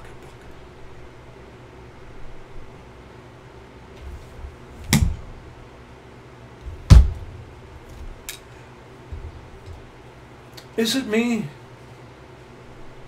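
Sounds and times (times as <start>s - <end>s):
short thumps: 4.0s - 5.6s, 6.6s - 8.3s, 9.1s - 9.9s.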